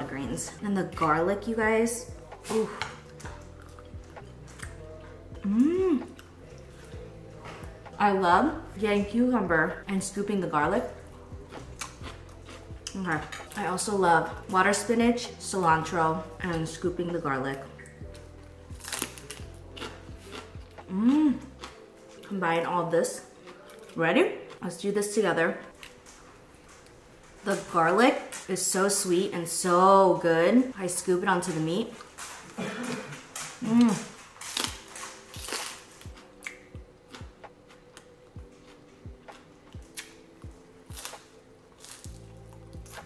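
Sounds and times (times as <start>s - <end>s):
soft background music: 0.0s - 43.0s
crunching fresh greens: 18.1s - 22.3s, 31.4s - 43.0s.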